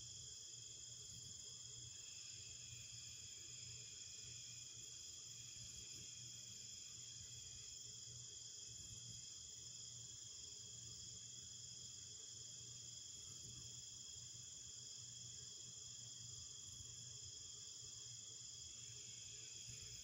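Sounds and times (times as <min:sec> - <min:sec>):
crickets chirping: 0:00.0 - 0:20.0.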